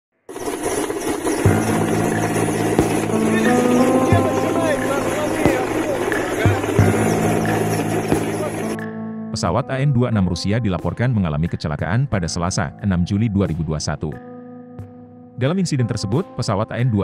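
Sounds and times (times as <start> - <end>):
helicopter engine and rotor din: 0.3 - 8.8
voices: 1.6 - 8.8.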